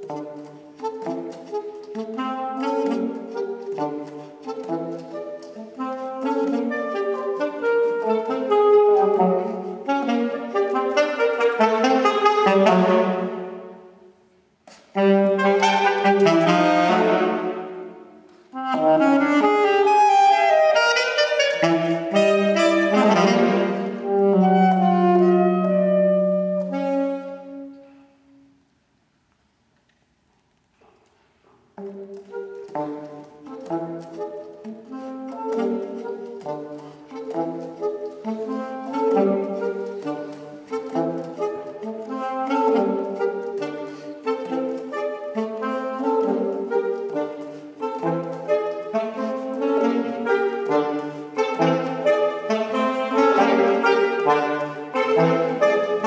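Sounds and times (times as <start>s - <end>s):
saxophone duet: 0.0s - 28.7s, 30.8s - 56.0s.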